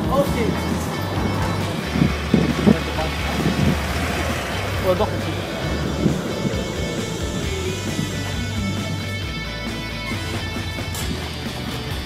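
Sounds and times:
background music: 0.0 - 12.0
traffic: 0.0 - 12.0
tram pulling in and stopping: 0.0 - 12.0.

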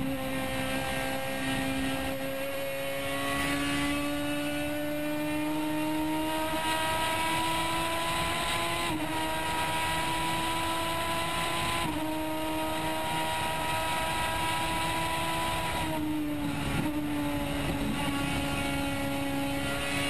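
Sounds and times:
race car engine accelerating: 0.0 - 20.0.

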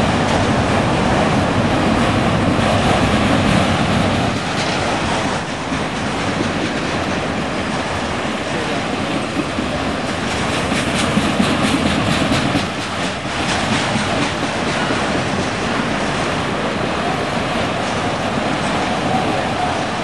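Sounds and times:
steel wheels rushing on rail: 0.0 - 20.0.

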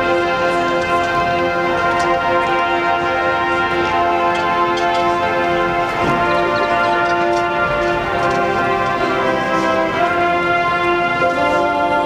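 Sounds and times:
sustained electronic pad chord: 0.0 - 12.0.

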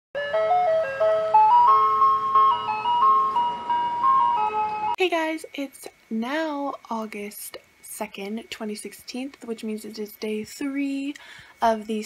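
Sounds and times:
intro music melody: 0.2 - 5.0.

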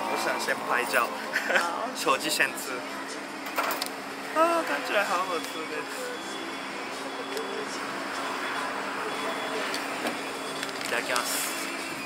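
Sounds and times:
street traffic noise: 0.0 - 12.0.

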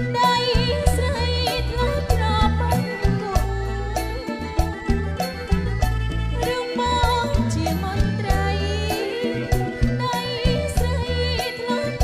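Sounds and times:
bass notes: 0.0 - 11.4
woman singing with vibrato: 0.0 - 12.0.

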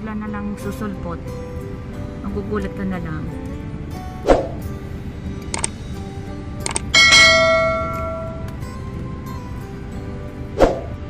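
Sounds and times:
bright bell chime: 7.0 - 8.8.

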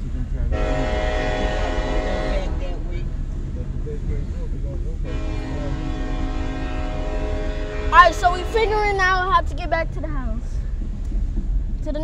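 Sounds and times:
low road rumble: 0.0 - 12.0
train horn blast: 0.4 - 3.4, 5.0 - 9.0.

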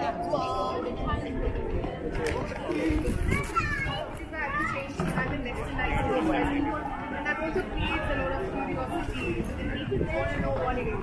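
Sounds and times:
passers-by talking: 0.0 - 11.0.

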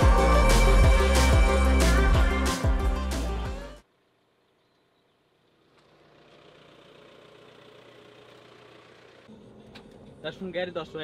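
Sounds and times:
faint vehicle engine hum: 3.8 - 11.0.

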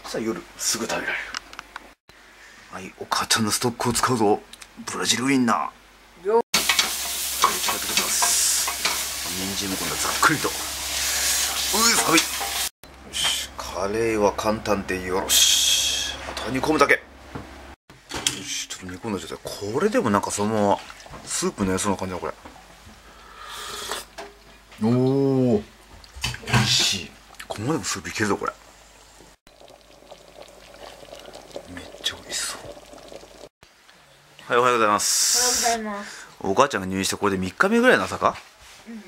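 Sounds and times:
broth simmering: 6.6 - 12.7, 18.5 - 36.4
food sizzling in a pan: 6.6 - 12.7, 26.2 - 33.5, 35.0 - 35.8
ladle sloshing and splashing: 29.5 - 33.5.

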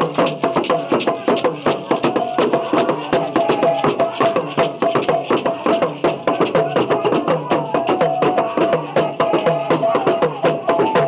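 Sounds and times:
shaken rattles: 0.0 - 11.0
voices singing: 0.1 - 11.0.

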